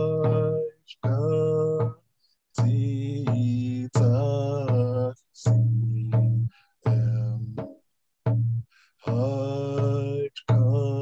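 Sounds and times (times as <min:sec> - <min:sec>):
hand drum beat: 0:00.0 - 0:02.0, 0:02.6 - 0:11.0
man singing chanted song: 0:00.0 - 0:02.0, 0:02.6 - 0:07.7, 0:09.0 - 0:11.0.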